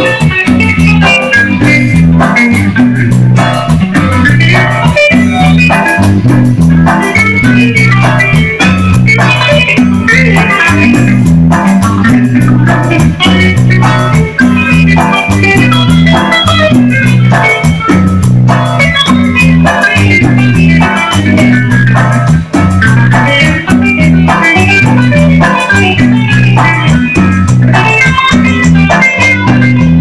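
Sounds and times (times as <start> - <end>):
bass line: 0.0 - 30.0
congas: 0.0 - 30.0
drum kit: 0.0 - 30.0
electric guitar lead: 0.0 - 30.0
keyboard: 0.0 - 30.0.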